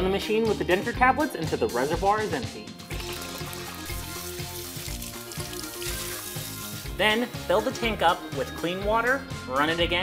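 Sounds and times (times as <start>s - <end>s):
background music with beat: 0.0s - 10.0s
liquid splashing into sink: 2.9s - 7.0s.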